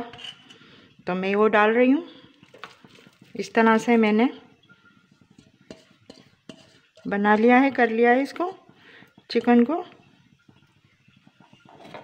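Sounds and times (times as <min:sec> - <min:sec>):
utensil tapping cooking pot: 0:00.0 - 0:12.0.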